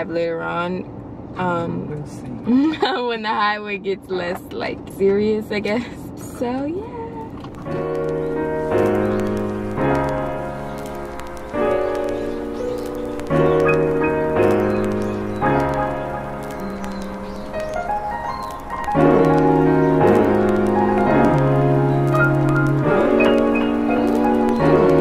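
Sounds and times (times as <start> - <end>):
background music chords: 7.6 - 25.0.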